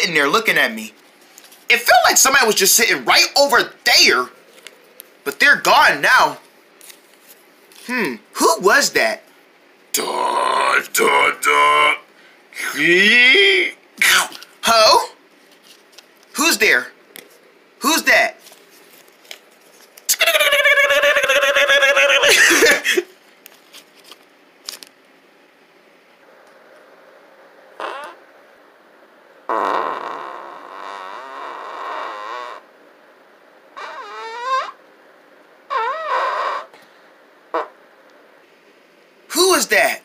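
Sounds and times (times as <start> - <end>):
quiet rough noise: 0.0 - 40.0
loud fart-like buzzing: 27.7 - 28.3, 29.5 - 32.7, 33.8 - 34.8, 35.7 - 36.8, 37.5 - 37.8.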